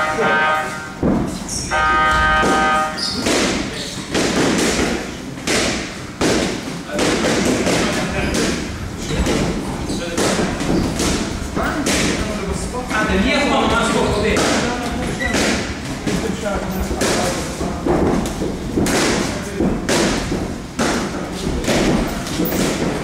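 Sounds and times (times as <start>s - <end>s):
steady held tone: 1.6s - 3.1s
boxing gloves punching: 2.1s - 12.3s, 17.0s - 23.0s.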